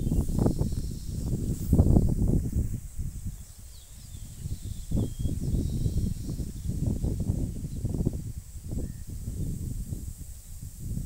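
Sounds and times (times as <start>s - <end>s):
faint bird chirps: 0.0s - 2.2s, 3.2s - 7.9s, 8.7s - 9.5s
wind rumble on microphone: 0.0s - 11.0s.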